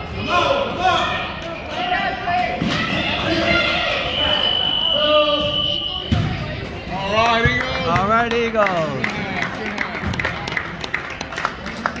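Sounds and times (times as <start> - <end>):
crowd clapping: 7.1 - 12.0.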